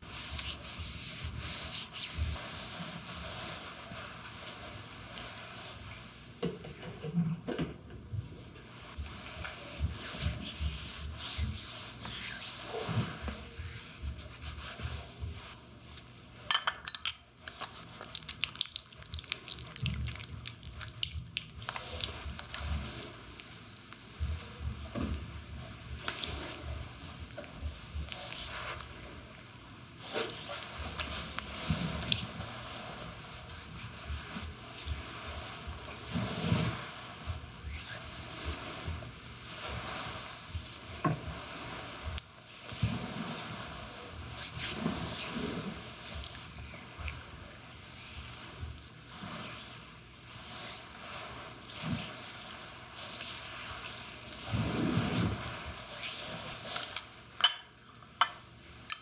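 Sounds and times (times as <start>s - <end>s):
hands rubbing oiled skin: 0.0s - 5.8s, 8.8s - 16.2s, 17.4s - 25.3s, 26.0s - 56.7s.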